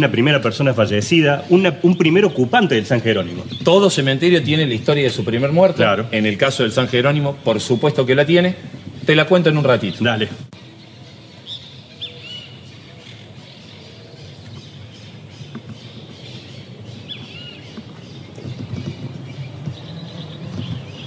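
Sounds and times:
birds chirping: 0.0 - 21.0
low outdoor rumble: 12.9 - 21.0.

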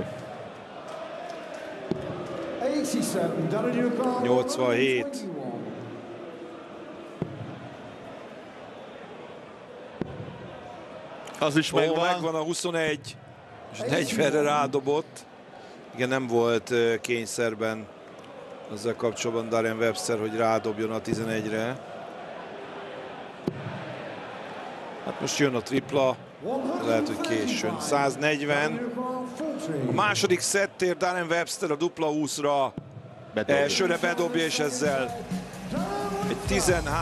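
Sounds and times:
murmur of arena crowd: 0.0 - 37.0.

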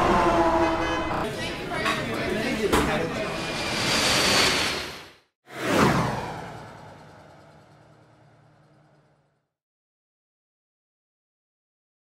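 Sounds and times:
rushing whoosh: 3.2 - 6.6.

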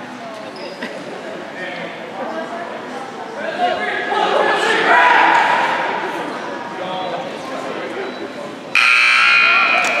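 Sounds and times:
crowd chatter: 0.0 - 10.0
scoreboard buzzer: 8.8 - 10.0.

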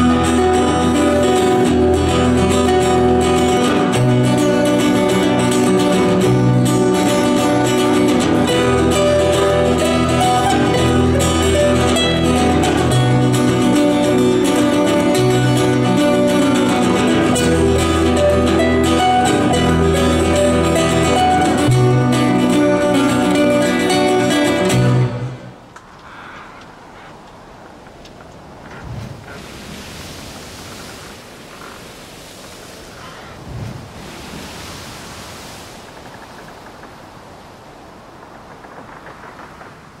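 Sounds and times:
acoustic guitars and double bass: 0.0 - 25.7
faint steady noise: 0.0 - 40.0.

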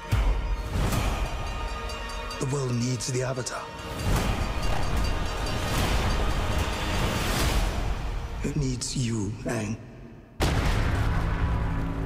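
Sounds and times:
film trailer music: 0.0 - 12.0.

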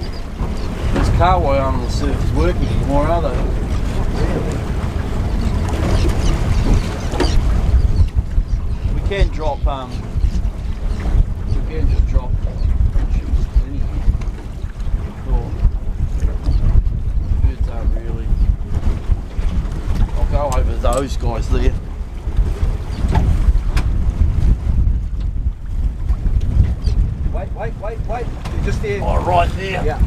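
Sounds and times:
water sounds: 0.0 - 30.0
wind buffeting microphone: 0.0 - 30.0.

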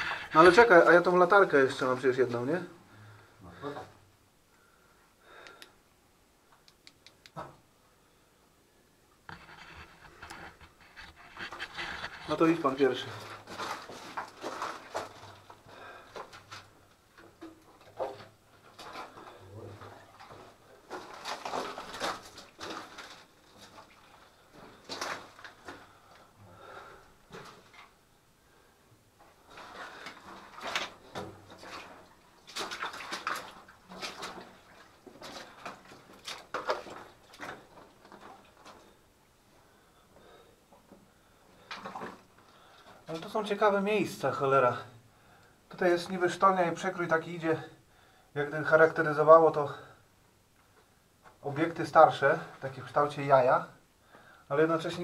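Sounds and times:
clothing and gear rustling: 9.4 - 26.3.

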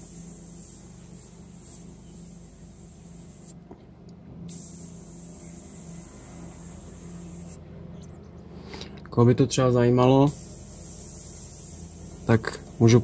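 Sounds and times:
airbrush hissing: 0.0 - 3.6, 4.5 - 7.6, 10.2 - 13.0.

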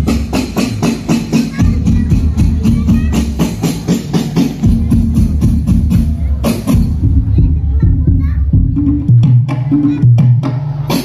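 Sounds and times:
low drum beats: 0.0 - 11.0
sharp percussion strokes: 0.0 - 11.0.

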